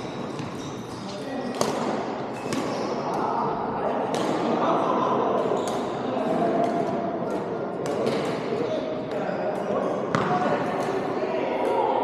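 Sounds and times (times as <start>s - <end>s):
echoing background voices: 1.1s - 12.0s
racket striking shuttlecock: 1.5s - 2.8s.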